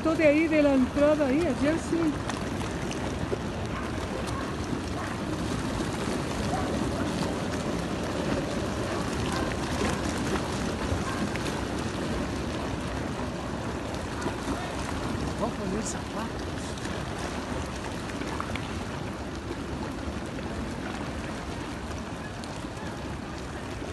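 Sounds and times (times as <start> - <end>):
muddy water rushing: 0.0 - 23.9
faint voices: 2.8 - 11.6, 12.5 - 17.6, 20.4 - 23.9.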